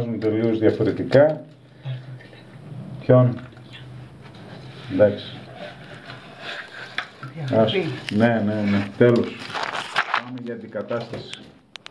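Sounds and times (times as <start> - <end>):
person speaking: 0.0 - 11.6.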